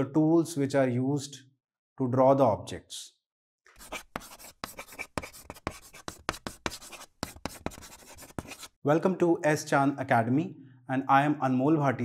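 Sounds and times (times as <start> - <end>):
pencil scratching on paper: 3.7 - 8.8.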